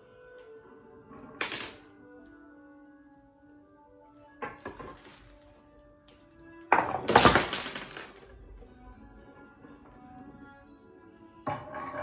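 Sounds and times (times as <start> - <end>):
bowling pins clattering: 6.7 - 8.6.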